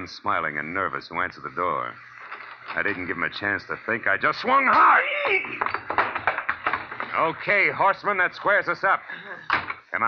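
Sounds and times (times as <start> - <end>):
knocks and thuds: 4.8 - 7.2.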